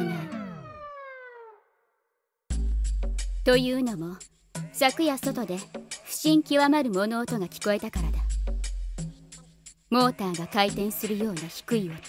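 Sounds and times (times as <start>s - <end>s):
voice: 0.0s - 0.6s, 3.5s - 4.2s, 4.8s - 8.3s, 9.9s - 12.0s
falling-pitch sound effect: 0.0s - 1.8s.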